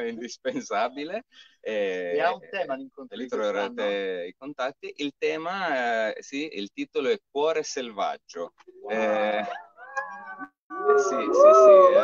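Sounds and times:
men howling like wolves: 9.4 - 12.0.

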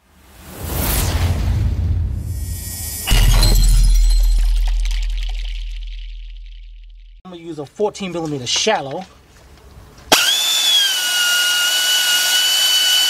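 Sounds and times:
whoosh and rumble: 0.0 - 7.2
heavy bass hit: 1.1 - 7.2
glassy shattering sparkle: 2.4 - 7.1.

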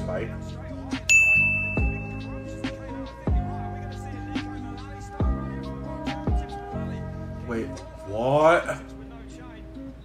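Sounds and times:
hip-hop music with deep bass: 0.0 - 10.0
bright high ding: 1.1 - 2.6.

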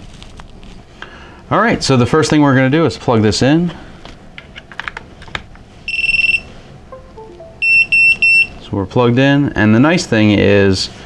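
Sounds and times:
high buzzer beeps: 7.6 - 8.6.

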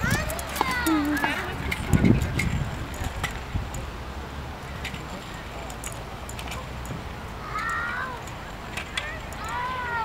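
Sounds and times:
scooter wheels rolling on concrete: 0.0 - 10.0.

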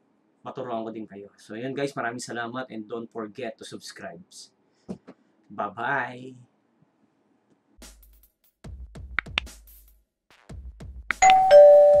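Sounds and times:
soft beats: 9.0 - 9.6
two-tone ding-dong chime: 11.2 - 12.0.

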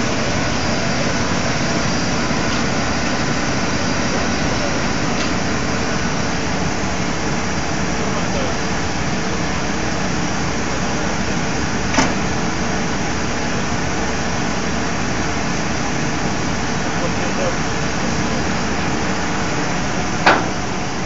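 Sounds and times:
locomotive cooling blowers rushing: 0.0 - 21.0.

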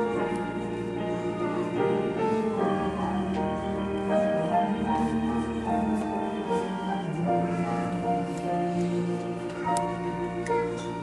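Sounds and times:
church organ chords: 0.0 - 11.0
piano notes: 0.0 - 11.0.

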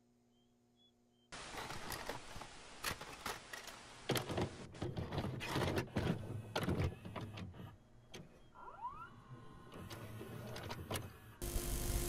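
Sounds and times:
motor whine rising in pitch: 11.3 - 12.0.

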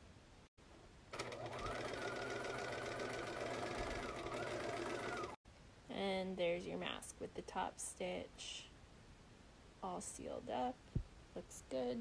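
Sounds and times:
sewing machine running: 1.2 - 5.4.

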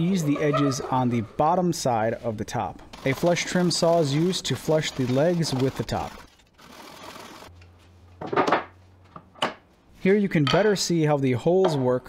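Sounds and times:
hand saw cutting wood: 3.0 - 7.5.

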